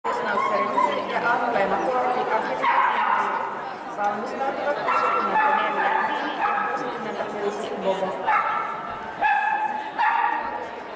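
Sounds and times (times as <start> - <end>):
people chattering: 0.0 - 10.9
dog barking and yipping: 8.3 - 10.4.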